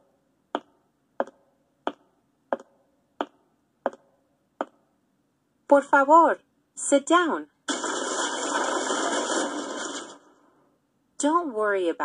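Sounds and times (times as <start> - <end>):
chair breaking crash: 7.7 - 10.3.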